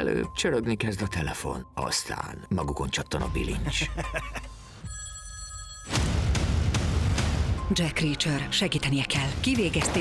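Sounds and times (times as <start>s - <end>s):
telephone ringing: 4.5s - 6.1s
deep rumbling trailer music: 5.9s - 10.0s.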